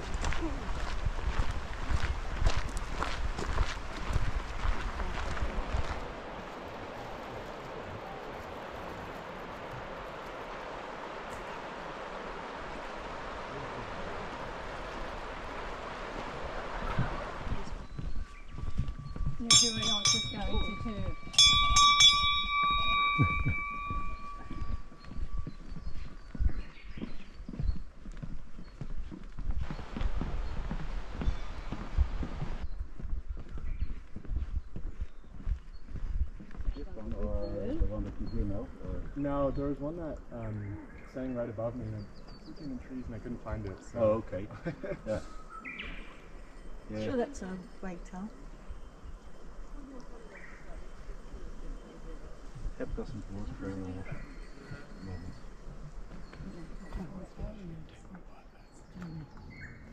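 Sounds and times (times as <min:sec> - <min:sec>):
footsteps on wooden boardwalk: 0:00.0 - 0:12.9, 0:14.2 - 0:39.7, 0:52.4 - 0:59.9
fast river rushing: 0:04.6 - 0:17.8
metal bell ringing: 0:19.0 - 0:25.5.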